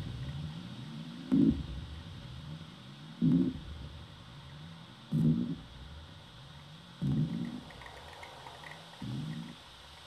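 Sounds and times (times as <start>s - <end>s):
low pitched electronic buzzing: 0.0s - 7.7s
steady hiss: 0.0s - 10.0s
faint ticking clicks: 7.0s - 10.0s.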